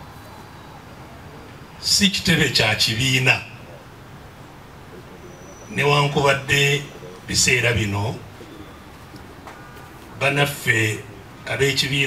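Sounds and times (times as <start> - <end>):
faint bird calling: 0.0 - 11.5
man speaking: 1.8 - 3.6, 5.7 - 8.3, 10.2 - 12.0.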